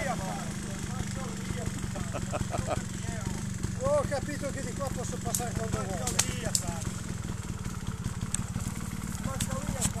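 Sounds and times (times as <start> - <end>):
motorcycle engine at low revs: 0.0 - 10.0.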